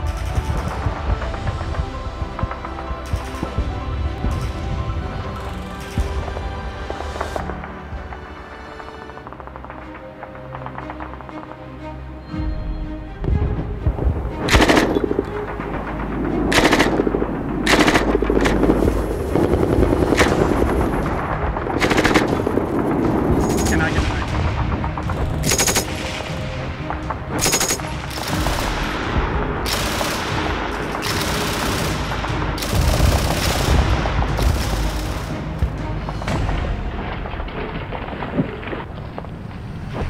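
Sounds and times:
machine gun bursts: 25.4 - 26.0.

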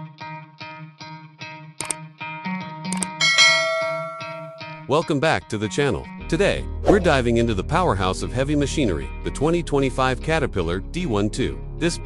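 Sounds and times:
background music: 1.8 - 12.0
notification bell chime: 3.2 - 4.7.

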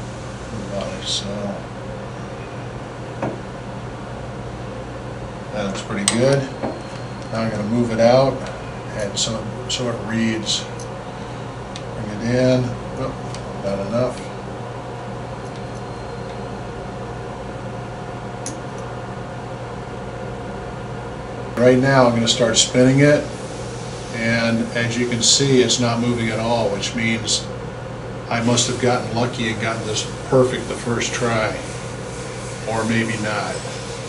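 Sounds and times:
low background hum: 0.0 - 34.0.

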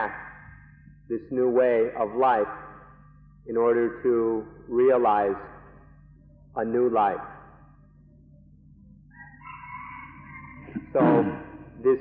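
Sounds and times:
low recording hum: 0.0 - 12.0.

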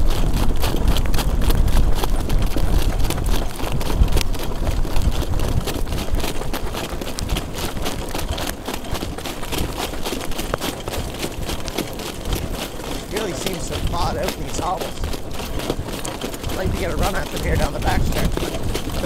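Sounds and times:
trotting horse hoofbeats: 0.0 - 19.0
wind rumbling on microphone: 0.0 - 19.0
man speaking: 13.0 - 15.0, 16.5 - 18.6.

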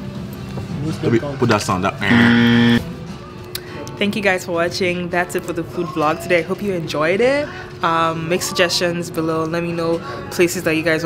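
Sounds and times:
quiet background music: 0.0 - 11.0
loud buzzing electronic tone: 2.0 - 2.8.

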